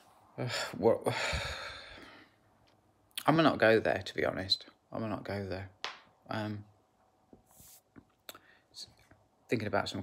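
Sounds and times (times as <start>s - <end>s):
soft hiss: 0.0s - 10.0s
man breathing faintly: 0.3s - 2.5s.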